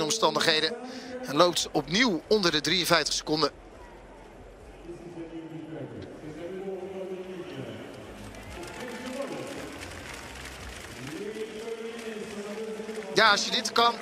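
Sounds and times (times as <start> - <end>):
stadium crowd ambience: 0.0 - 14.0.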